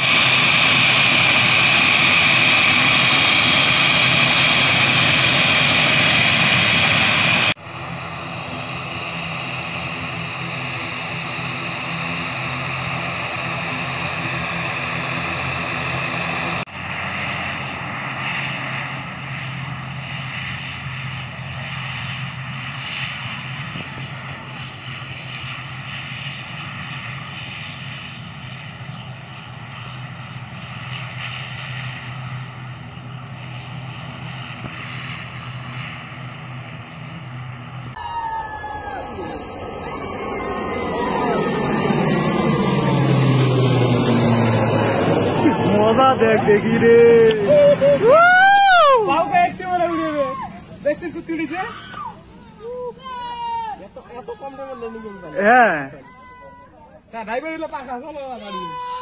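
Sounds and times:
turboprop engines droning: 0.0s - 59.0s.

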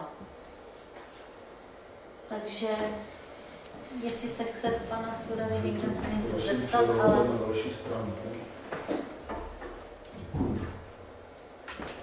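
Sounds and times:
person speaking: 3.9s - 8.5s.

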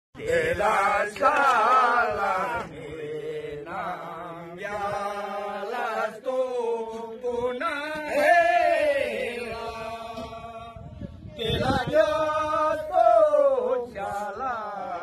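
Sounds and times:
chanted vocal line: 0.2s - 15.0s.

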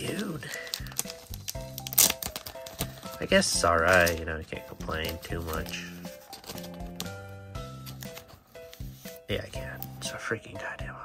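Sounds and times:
foil wrapper crinkle: 0.0s - 7.0s
background music: 0.0s - 11.0s.

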